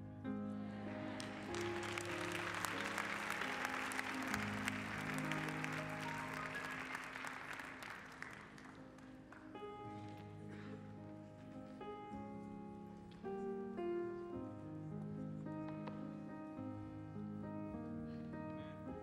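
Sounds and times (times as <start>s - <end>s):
soft keyboard chords: 0.0s - 19.0s
congregation applauding: 0.7s - 9.6s.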